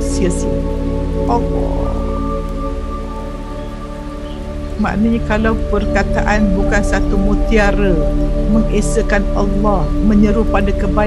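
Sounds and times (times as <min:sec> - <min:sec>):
woman talking: 0:00.0 - 0:00.6, 0:01.2 - 0:02.0, 0:04.8 - 0:11.0.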